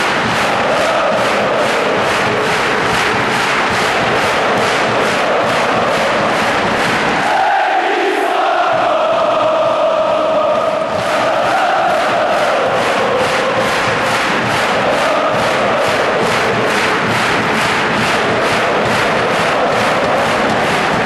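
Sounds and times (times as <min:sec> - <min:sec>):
football crowd chanting: 0:00.0 - 0:21.0
rhythmic clapping: 0:00.0 - 0:21.0.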